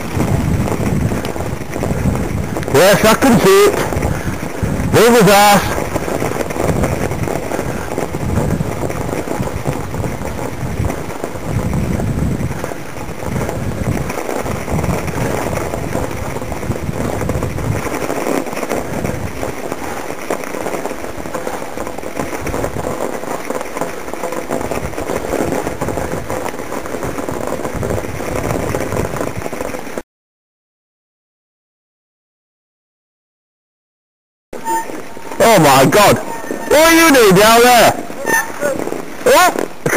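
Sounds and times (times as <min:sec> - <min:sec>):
mountain bike riding on snow: 0:00.0 - 0:30.0, 0:34.6 - 0:39.9
wind buffeting microphone: 0:00.0 - 0:30.0, 0:34.6 - 0:39.9.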